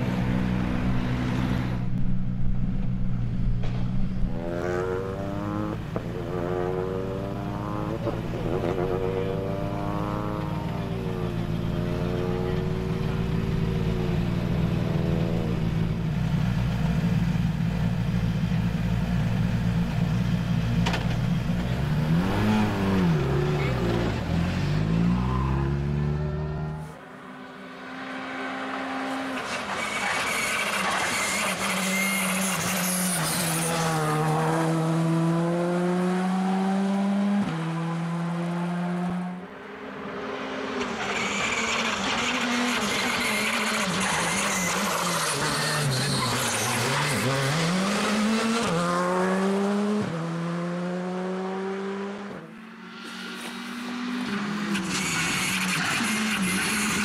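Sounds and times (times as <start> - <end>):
tyre and road noise: 0.0 - 57.0
rally car engine revving: 3.2 - 18.2, 19.2 - 27.0, 27.9 - 39.5, 40.1 - 57.0.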